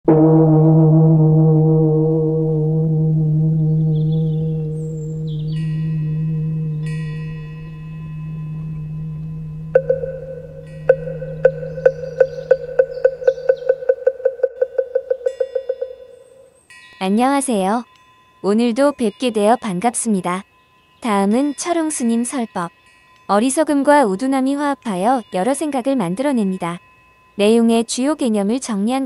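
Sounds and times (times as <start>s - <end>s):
deep gong ringing: 0.1s - 13.6s
higher chime tones: 3.0s - 13.9s
bell struck repeatedly: 4.3s - 14.3s.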